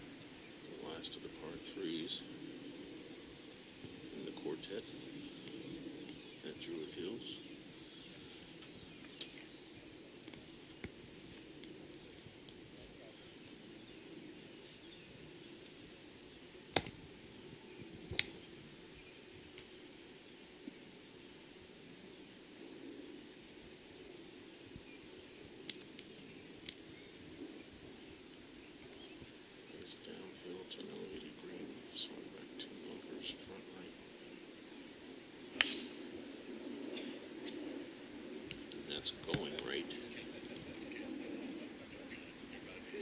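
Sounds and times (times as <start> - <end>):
high insect drone: 0.0 - 43.0.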